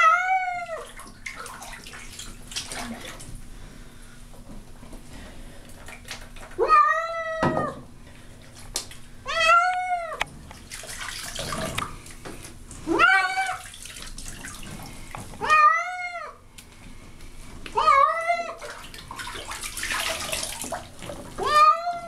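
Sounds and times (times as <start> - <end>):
cat yowling: 0.0 - 0.9, 6.6 - 7.8, 9.3 - 10.2, 12.9 - 13.7, 15.4 - 16.4, 17.8 - 18.6, 21.4 - 22.0.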